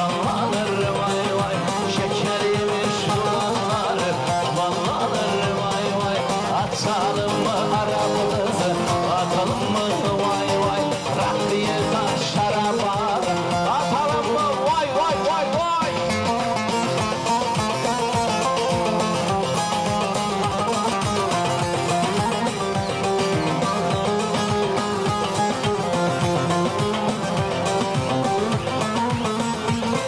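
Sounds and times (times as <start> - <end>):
plucked string melody: 0.0 - 30.0
steady driving beat: 0.0 - 30.0.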